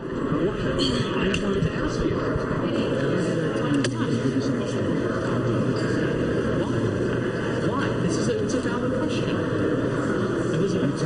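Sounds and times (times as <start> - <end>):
muffled male voices: 0.0 - 11.0
steady background din: 0.0 - 11.0.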